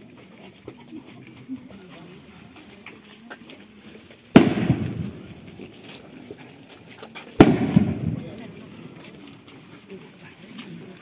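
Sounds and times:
firework bangs with echo: 4.3 - 5.5, 7.4 - 8.5.

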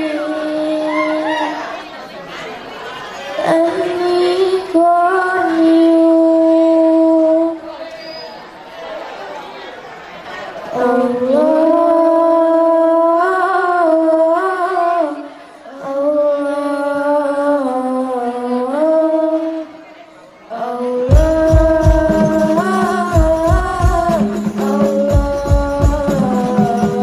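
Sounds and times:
girls singing devotional chant: 0.0 - 1.8, 3.2 - 7.8, 10.5 - 27.0.

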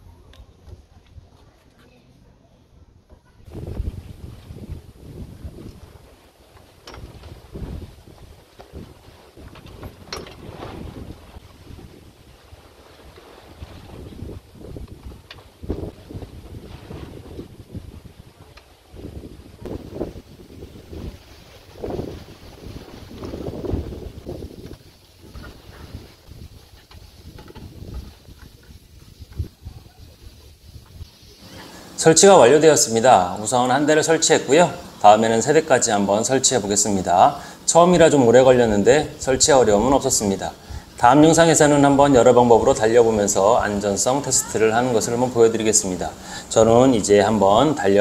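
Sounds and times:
wind buffeting microphone: 2.8 - 48.0.

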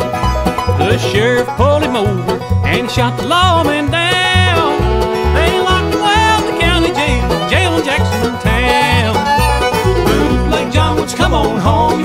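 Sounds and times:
banjo: 0.0 - 12.0
bass keeping steady beat: 0.0 - 12.0
lead instrument bending notes: 0.0 - 12.0.

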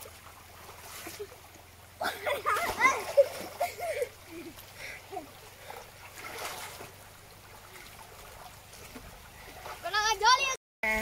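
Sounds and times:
splashing in river water: 0.0 - 10.6.

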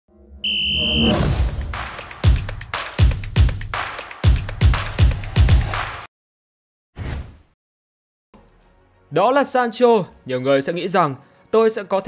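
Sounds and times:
high electronic tone: 0.4 - 1.2.

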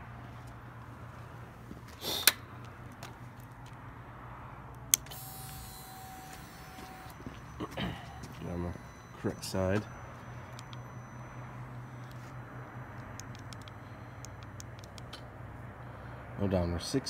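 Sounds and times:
fuel pump whine: 0.0 - 16.4
low steady hum: 0.0 - 16.8
sharp click: 13.0 - 15.2.

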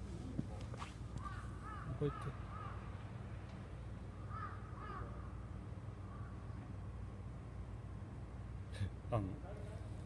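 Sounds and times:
crow cawing: 1.2 - 3.0, 4.2 - 6.5.

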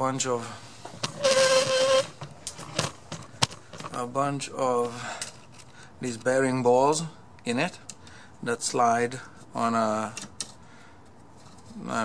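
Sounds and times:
drawer slide metallic whir: 1.0 - 2.2.

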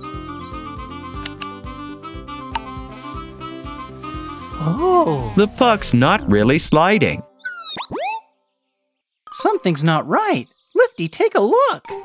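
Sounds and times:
background music with steady beat: 0.0 - 5.5
sharp clicks: 1.2 - 1.5.

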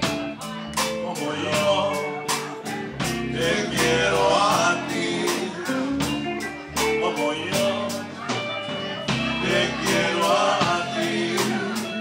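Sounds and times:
drum beat: 0.0 - 7.0, 7.6 - 12.0
live country-blues band: 0.0 - 12.0.

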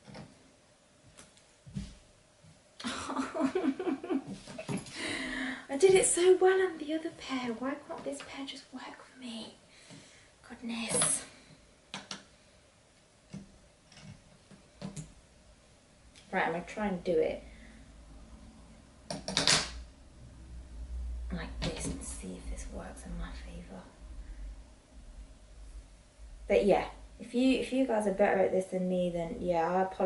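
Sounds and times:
woman speaking: 5.0 - 9.6, 10.4 - 11.4, 16.3 - 17.5, 21.3 - 24.0, 26.5 - 30.0.

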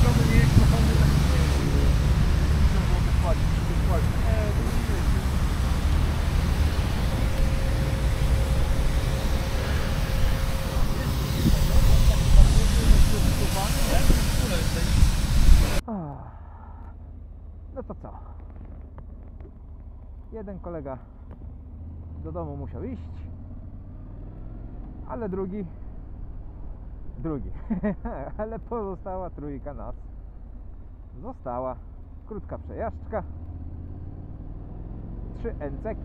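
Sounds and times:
man speaking: 0.0 - 5.3, 10.5 - 15.1, 17.8 - 18.3, 20.3 - 21.0, 25.1 - 25.8
wind buffeting microphone: 0.0 - 15.8.

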